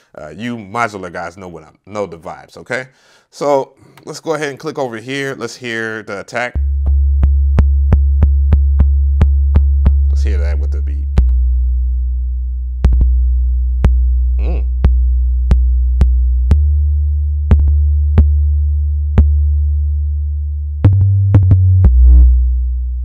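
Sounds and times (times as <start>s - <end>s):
deep synth bass notes: 6.6s - 23.0s
drum machine ticks and hits: 12.8s - 13.2s.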